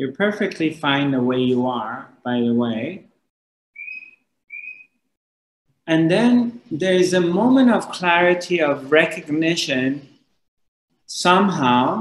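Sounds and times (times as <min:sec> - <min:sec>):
high whistling tones: 0:03.8 - 0:05.0.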